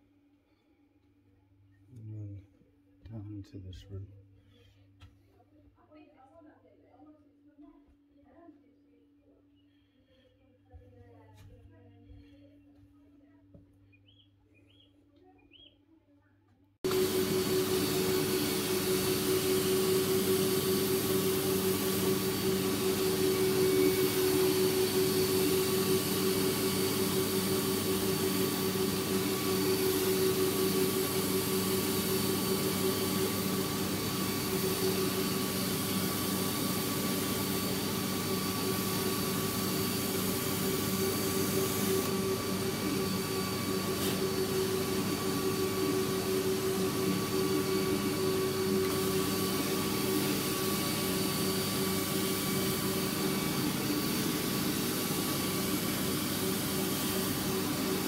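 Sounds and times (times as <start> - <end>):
carpet extraction machine humming: 16.8 - 58.0
rushing suction noise: 16.9 - 58.0.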